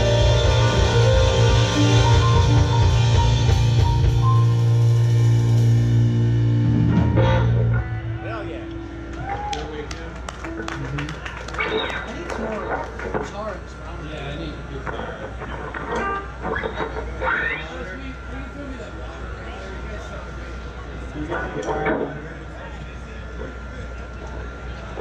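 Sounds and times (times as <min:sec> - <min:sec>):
rock music with guitar and drums: 0:00.0 - 0:09.1
murmur of voices: 0:07.4 - 0:25.0.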